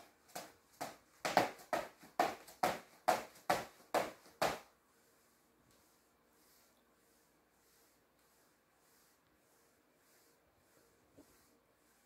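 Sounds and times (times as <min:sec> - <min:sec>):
exercise beats: 0:00.0 - 0:04.8.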